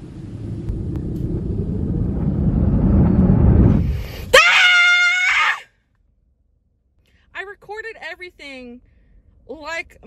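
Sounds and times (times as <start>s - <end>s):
low vehicle rumble: 0.0s - 5.0s.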